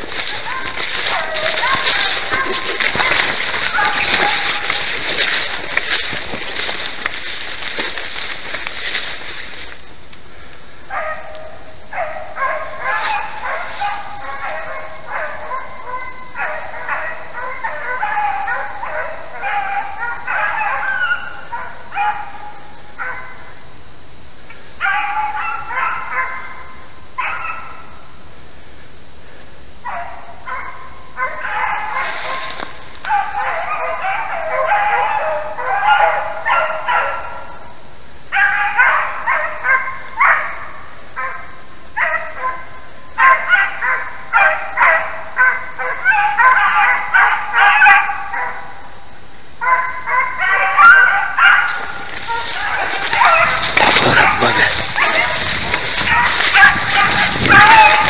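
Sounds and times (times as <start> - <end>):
hunting dogs baying: 0.0 - 9.6, 10.8 - 28.1, 29.8 - 58.0.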